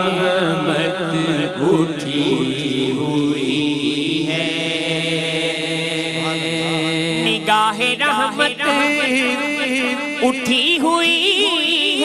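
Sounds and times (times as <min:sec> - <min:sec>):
men singing long notes: 0:00.0 - 0:12.0.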